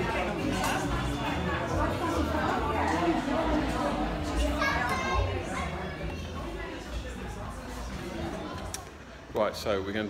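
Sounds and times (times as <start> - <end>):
adults chattering: 0.0 - 10.0
children's voices: 2.2 - 6.8.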